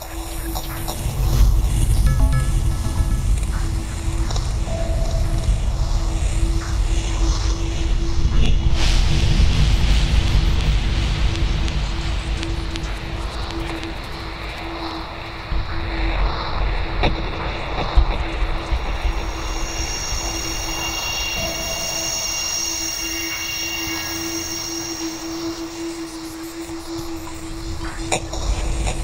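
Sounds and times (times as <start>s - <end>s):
low rumbling drone: 0.2s - 29.0s
high shimmering held tones: 1.9s - 7.1s, 18.9s - 27.8s
steady held note: 2.0s - 6.2s.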